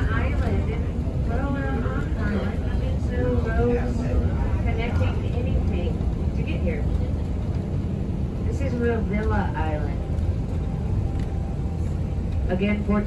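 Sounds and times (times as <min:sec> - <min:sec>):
vehicle rumble from inside: 0:00.0 - 0:13.0.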